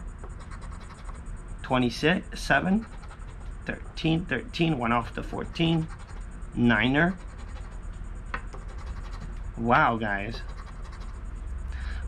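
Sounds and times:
coin scratching lottery ticket: 0:00.3 - 0:01.2, 0:01.8 - 0:07.8, 0:08.5 - 0:09.4, 0:10.0 - 0:11.2.

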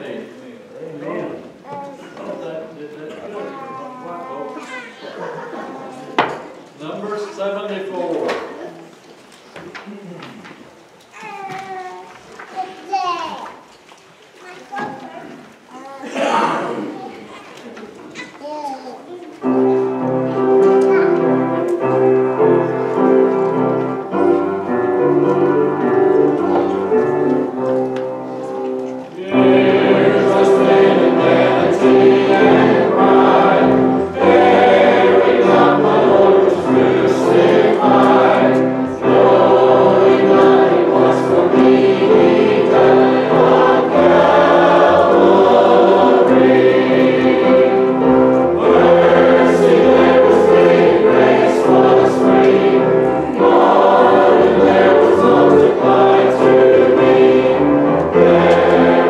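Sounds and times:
congregation singing a hymn: 0:00.0 - 0:01.6, 0:16.1 - 0:17.1, 0:19.4 - 0:59.0.

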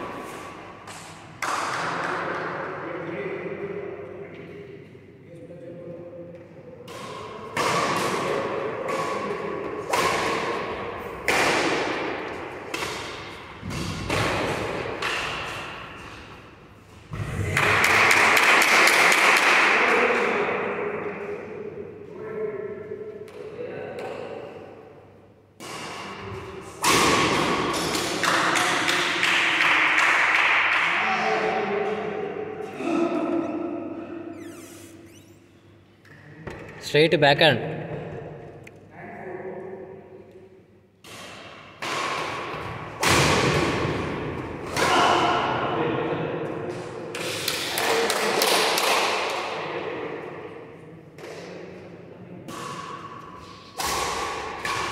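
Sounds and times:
racket hitting shuttlecock: 0:00.0 - 0:02.5, 0:06.8 - 0:19.7, 0:25.6 - 0:30.8, 0:41.0 - 0:45.6, 0:52.4 - 0:54.9.

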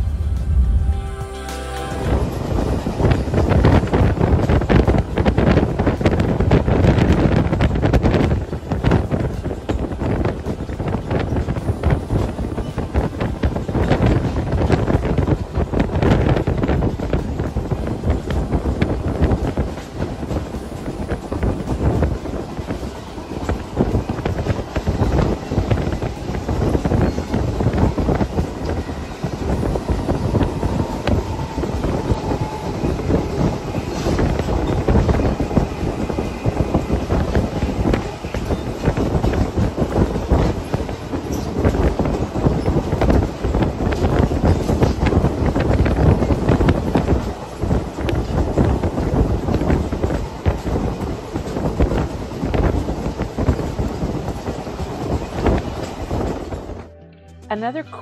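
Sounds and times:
train wheels rumbling on rail: 0:00.0 - 0:56.9.

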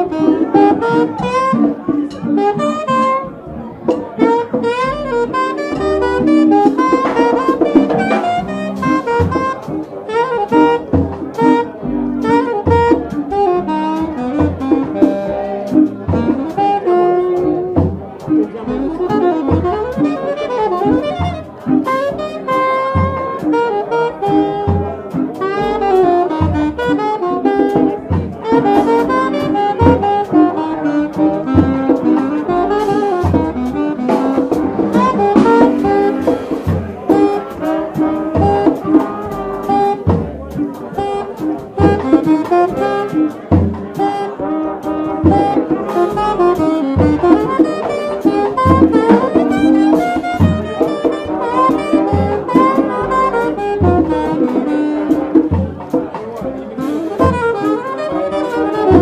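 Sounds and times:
double bass: 0:00.0 - 0:59.0
drum kit: 0:00.0 - 0:59.0
saxophone melody: 0:00.0 - 0:59.0.

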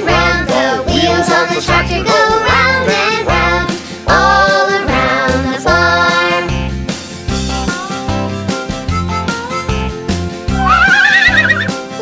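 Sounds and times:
children's song backing music: 0:00.0 - 0:10.9
horse whinny: 0:10.5 - 0:11.8.

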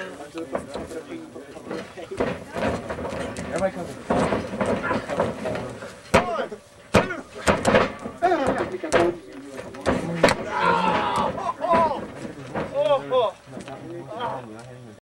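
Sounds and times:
voices talking and shouting: 0:00.0 - 0:15.0.

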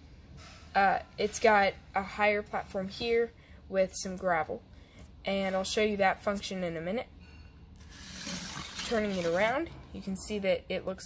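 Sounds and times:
plastic model scraping on wood: 0:07.8 - 0:09.6.

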